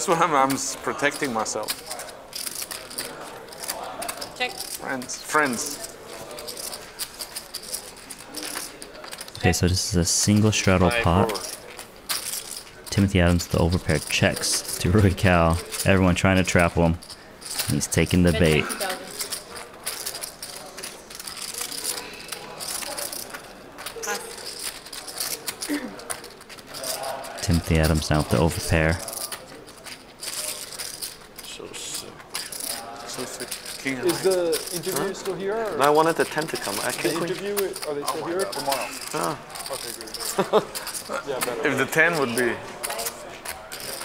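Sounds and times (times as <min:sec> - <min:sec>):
faint table chatter: 0:00.0 - 0:44.0
poker chips clicking: 0:00.5 - 0:44.0
faint voices: 0:00.6 - 0:35.4.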